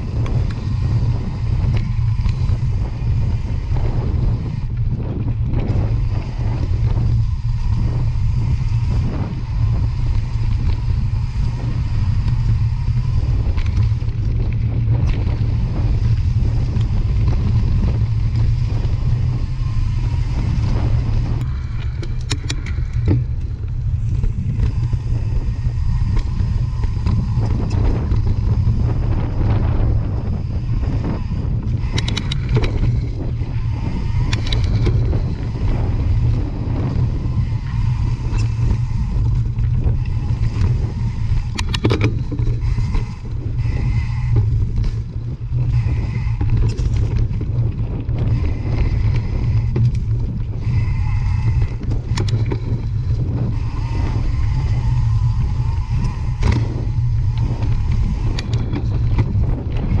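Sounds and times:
bike tyres crunching on trail: 0:00.0 - 1:00.0
wind buffeting microphone: 0:00.0 - 1:00.0.

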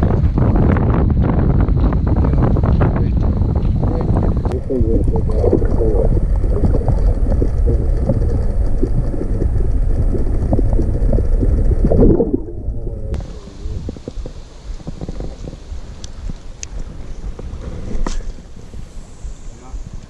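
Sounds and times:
muffled underwater rumble: 0:00.0 - 0:20.0
wind: 0:00.0 - 0:20.0
gurgling bubbles: 0:04.5 - 0:13.2
river hiss: 0:13.2 - 0:20.0.

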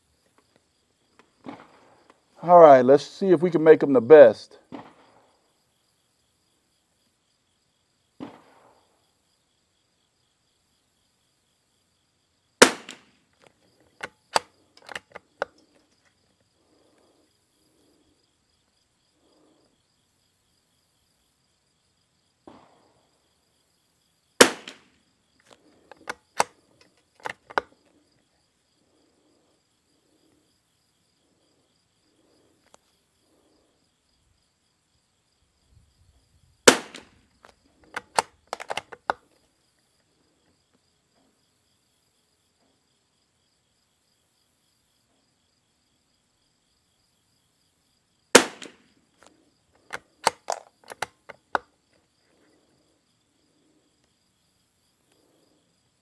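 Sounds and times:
rifle shots: 0:12.6 - 0:13.1, 0:24.4 - 0:24.9, 0:36.6 - 0:37.2, 0:48.4 - 0:48.8
rifle bolt clicking: 0:14.0 - 0:15.6, 0:37.9 - 0:39.2, 0:49.9 - 0:51.6.

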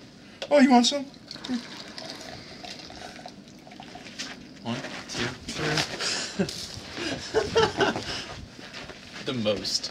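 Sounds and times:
water pouring into container: 0:01.1 - 0:04.2.

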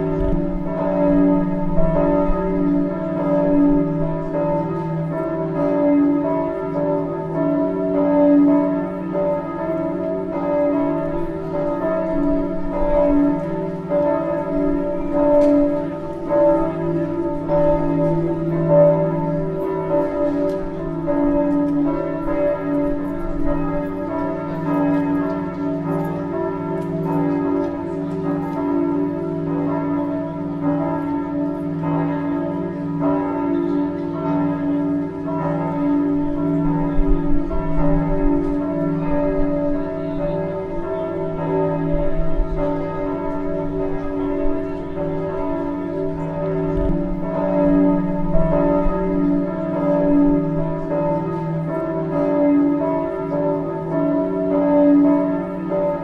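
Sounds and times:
church bells ringing: 0:00.0 - 0:56.0.

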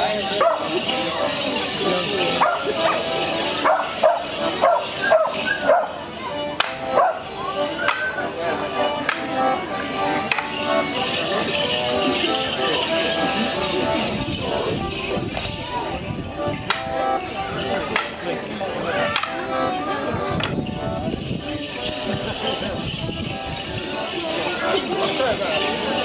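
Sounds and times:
accordion playing dance tune: 0:00.0 - 0:26.0
crowd voices: 0:00.0 - 0:26.0
leg bells jingling: 0:00.0 - 0:26.0
wooden sticks clacking: 0:06.5 - 0:07.2, 0:07.8 - 0:08.2, 0:09.0 - 0:09.4, 0:10.2 - 0:11.0, 0:16.6 - 0:17.0, 0:17.9 - 0:18.2, 0:19.1 - 0:19.4.

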